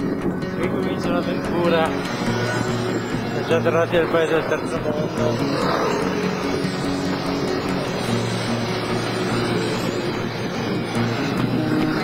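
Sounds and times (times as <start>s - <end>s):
background music: 0.0s - 12.0s
scooters and cars passing: 0.0s - 12.0s.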